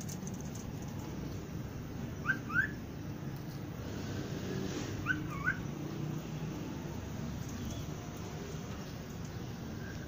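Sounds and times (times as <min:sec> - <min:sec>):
parrot chirps: 0:02.2 - 0:02.8, 0:05.0 - 0:05.7.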